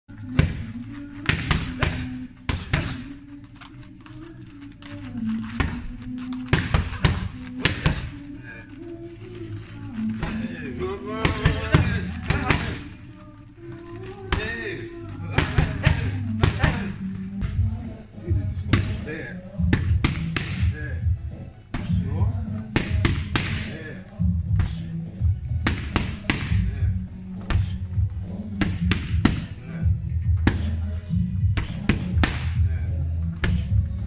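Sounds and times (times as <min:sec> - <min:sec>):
music with vocal: 0:00.1 - 0:34.0
boxing gloves thudding on pads: 0:00.3 - 0:03.1, 0:05.6 - 0:08.3, 0:19.6 - 0:20.7, 0:22.7 - 0:23.7, 0:25.6 - 0:26.8, 0:28.5 - 0:29.5, 0:31.5 - 0:32.6.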